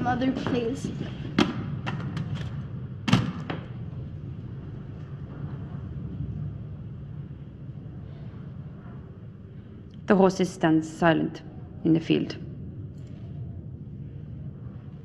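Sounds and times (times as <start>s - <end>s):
low steady rumble: 0.0s - 15.0s.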